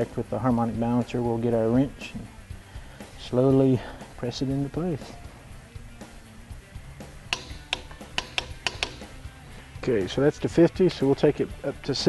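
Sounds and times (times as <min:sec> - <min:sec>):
ratchet wrench clicking: 0:07.3 - 0:09.2.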